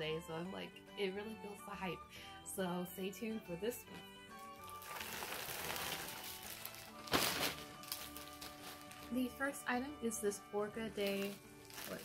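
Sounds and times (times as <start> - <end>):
background music: 0.0 - 12.0
plastic bag crinkling: 4.4 - 9.4, 11.0 - 12.0.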